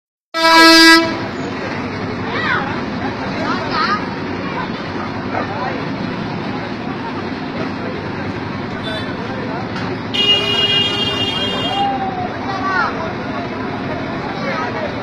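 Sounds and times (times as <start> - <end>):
vehicle horn honk: 0.4 - 1.2, 8.8 - 9.2, 10.1 - 11.9
traffic: 0.4 - 15.0
people talking: 1.1 - 15.0.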